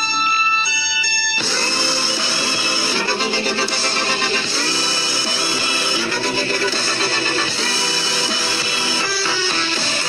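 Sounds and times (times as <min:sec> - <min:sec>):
guitar music: 0:01.4 - 0:10.0.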